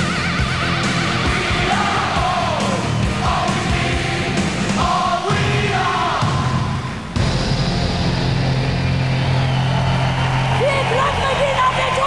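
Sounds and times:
steady low drone: 0:06.8 - 0:10.6.

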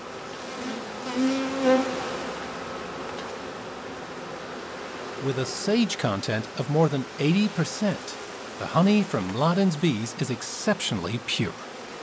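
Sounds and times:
bee buzzing close by: 0:00.0 - 0:12.0
hum of bee colony: 0:00.0 - 0:12.0.

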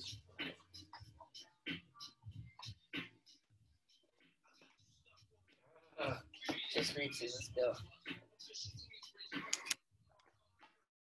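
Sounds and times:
sharp clicks: 0:09.4 - 0:09.8.

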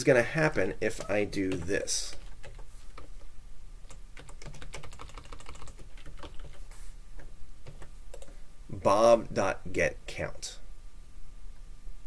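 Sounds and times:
typing on computer keyboard: 0:03.9 - 0:06.6.

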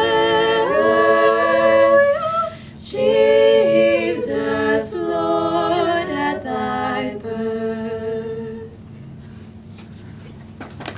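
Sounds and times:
women singing a cappella: 0:00.0 - 0:08.8.

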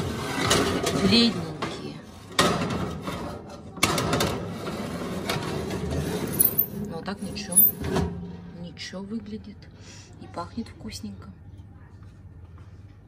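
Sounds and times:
metal tray scraping oven rails: 0:04.1 - 0:08.2.

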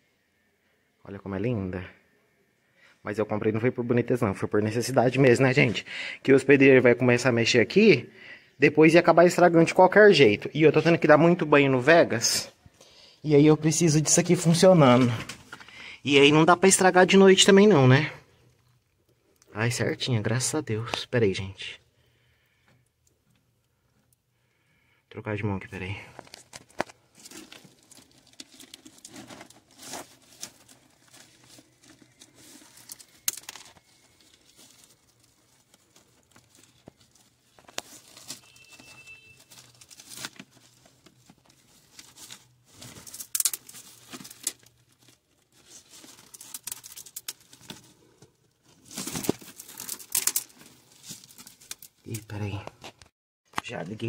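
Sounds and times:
hands rustling and scraping: 0:26.2 - 0:52.0.

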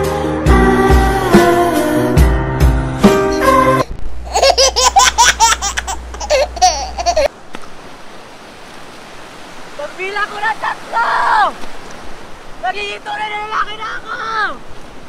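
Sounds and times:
wind: 0:02.8 - 0:15.0
surf rushing: 0:03.1 - 0:15.0
high-pitched laughter: 0:04.3 - 0:07.3
short shouts: 0:10.6 - 0:11.6.

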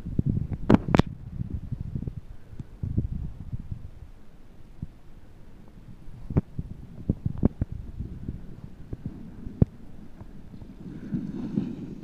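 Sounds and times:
low thumping and rumble on microphone: 0:00.0 - 0:12.0.

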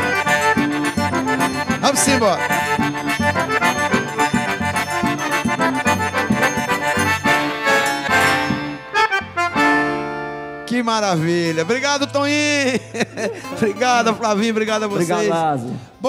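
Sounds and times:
drum beats: 0:00.0 - 0:10.2
accordions playing: 0:00.0 - 0:16.0.

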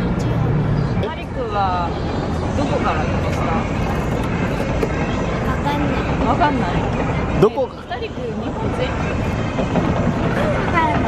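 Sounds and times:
faint voices of passers-by: 0:00.0 - 0:11.0
low rumble of traffic: 0:00.0 - 0:11.0.

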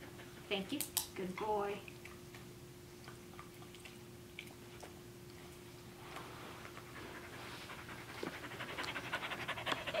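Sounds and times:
small dog panting: 0:06.9 - 0:10.0.

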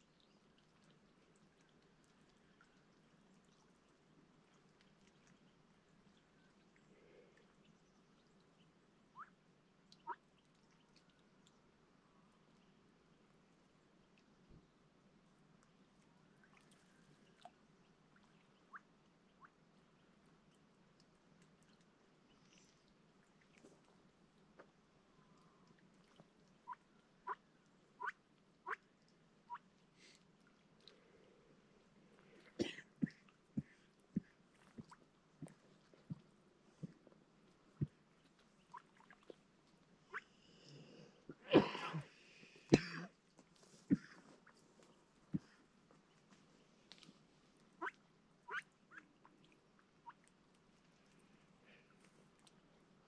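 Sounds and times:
soft duck calls: 0:09.1 - 0:09.3, 0:26.6 - 0:28.9, 0:40.1 - 0:40.3, 0:47.8 - 0:49.4.

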